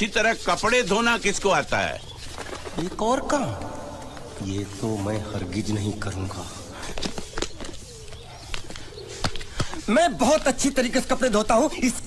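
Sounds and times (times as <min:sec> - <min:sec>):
bird cooing: 0:02.2 - 0:09.9.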